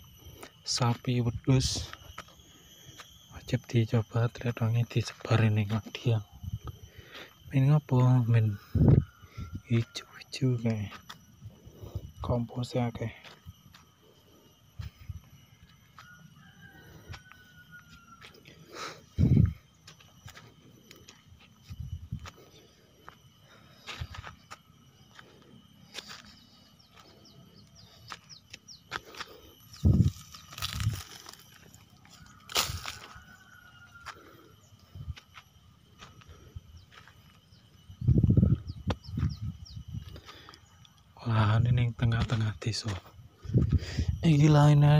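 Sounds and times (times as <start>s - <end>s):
footsteps on dry soil: 13.2s - 13.9s, 17.0s - 18.4s, 19.0s - 34.3s, 35.1s - 40.6s, 41.3s - 44.8s.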